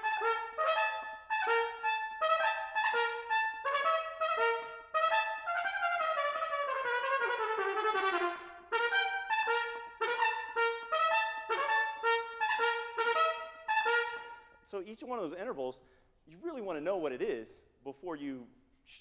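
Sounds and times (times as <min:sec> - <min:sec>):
solo trumpet playing: 0:00.0 - 0:14.7.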